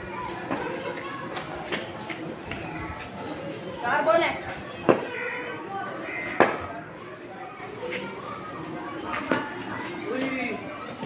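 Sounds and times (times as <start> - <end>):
children calling out: 4.6 - 11.0.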